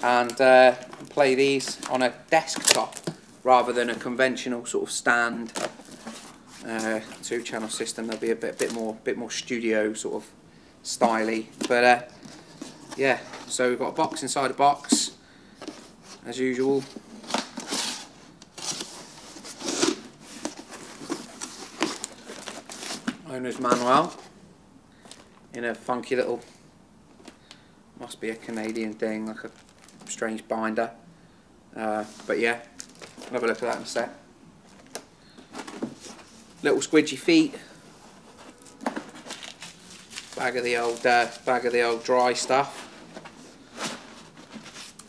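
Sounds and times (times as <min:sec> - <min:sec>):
plastic packets crinkling: 0:28.4 - 0:30.2, 0:32.7 - 0:34.1, 0:38.5 - 0:42.8.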